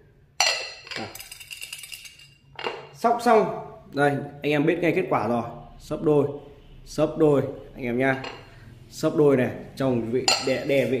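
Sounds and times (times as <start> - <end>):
counters rattling in a ceramic bowl: 0.4 - 3.0.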